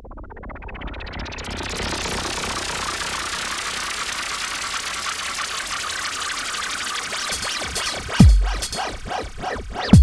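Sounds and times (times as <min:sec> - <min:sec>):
electronic dance music: 0:01.9 - 0:10.0.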